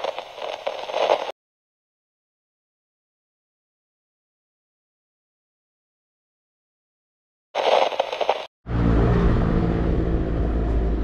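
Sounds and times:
tv static crackling hiss: 0.0 - 1.3, 7.6 - 8.5.

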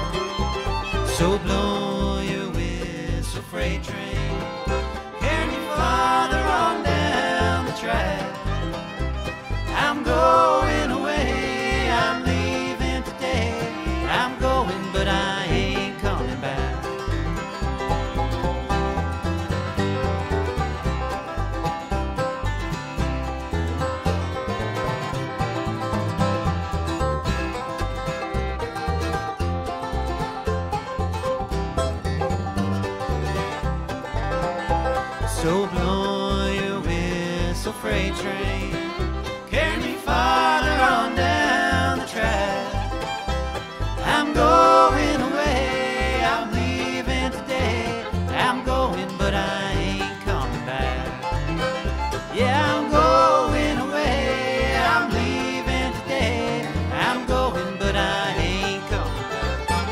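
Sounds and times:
acoustic guitar: 0.0 - 59.9
banjo: 0.0 - 59.9
fiddle: 0.0 - 59.9
mandolin: 0.0 - 59.9
upright bass: 0.0 - 59.9.

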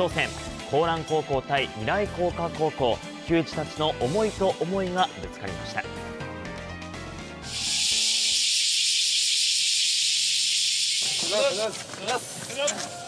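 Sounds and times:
loud high-pitched hiss: 7.4 - 12.4.

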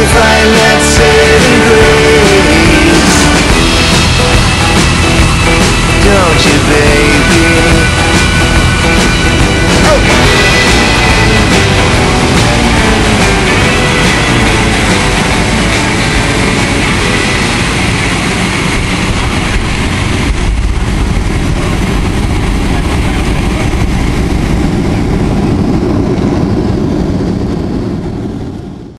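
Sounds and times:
jet engines from inside cabin: 0.0 - 28.9.

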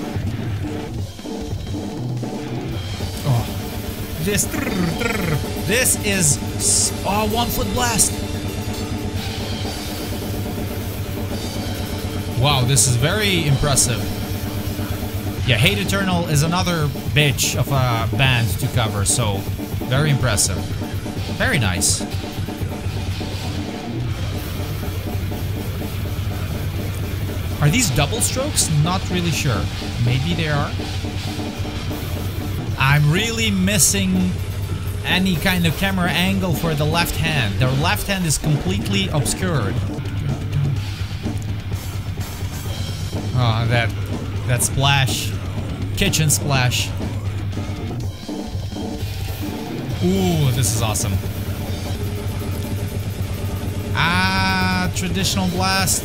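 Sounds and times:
death metal music: 0.0 - 56.0
rapid drum kit playing: 0.0 - 56.0
heavy metal with distorted guitars: 18.7 - 56.0.

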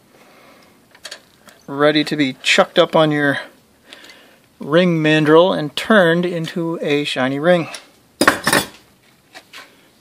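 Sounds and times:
metal ring clattering on steel: 8.2 - 8.8.

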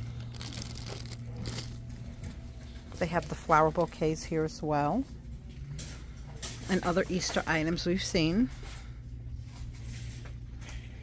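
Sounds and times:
low store hum: 0.0 - 11.0.

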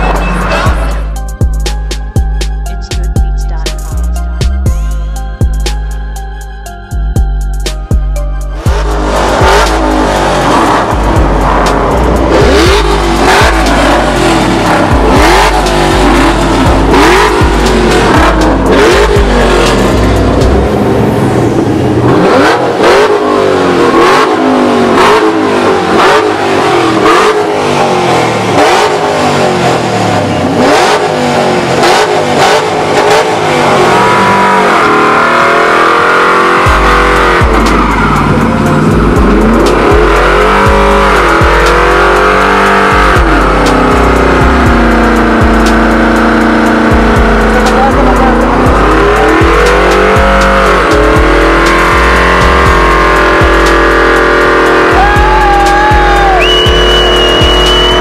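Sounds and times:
music with steady beat: 0.0 - 21.4, 30.6 - 58.0
pickup engine revving in burnout: 8.6 - 58.0.

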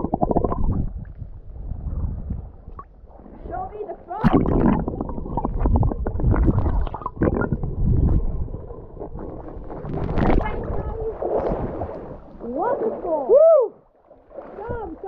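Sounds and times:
deep irregular rumble: 0.0 - 12.0
water gurgling and sloshing: 0.0 - 15.0
water crackling against housing: 14.3 - 15.0.

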